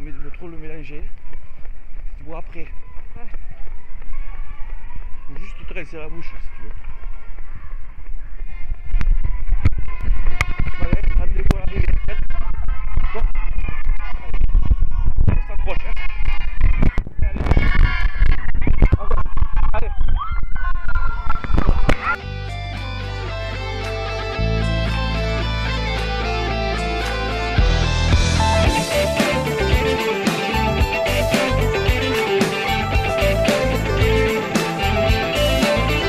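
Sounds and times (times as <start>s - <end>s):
rock music with guitar and bass: 22.2s - 36.0s.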